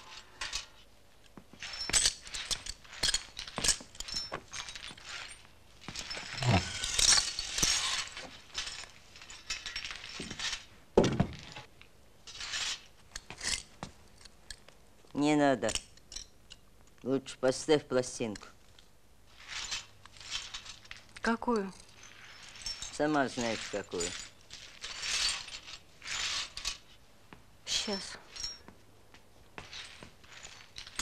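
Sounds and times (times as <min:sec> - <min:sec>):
glass shards clinking: 0:01.6 - 0:10.7, 0:19.4 - 0:26.9, 0:27.7 - 0:28.7, 0:29.6 - 0:31.0
broom scraping floor: 0:04.5 - 0:08.6.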